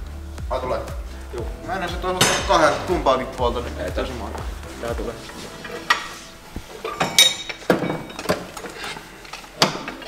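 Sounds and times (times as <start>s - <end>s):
hand tools clinking on metal: 6.8s - 10.0s.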